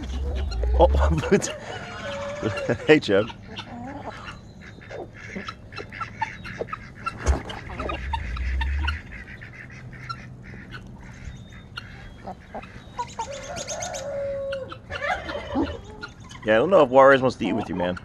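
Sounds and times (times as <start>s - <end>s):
poultry short calls: 0.0s - 16.4s
turkey spitting and drumming: 0.0s - 16.7s
chickens clucking: 0.0s - 18.0s.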